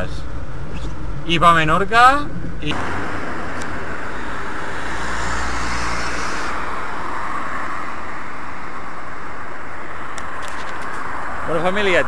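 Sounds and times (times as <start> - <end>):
street traffic noise: 0.0 - 12.0
vehicle rumbling past: 2.6 - 12.0.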